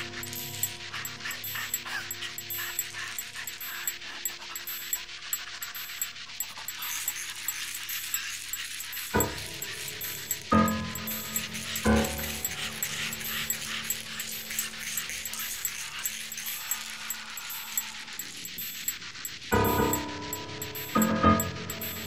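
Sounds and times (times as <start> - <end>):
rushing hiss: 0.0 - 22.0.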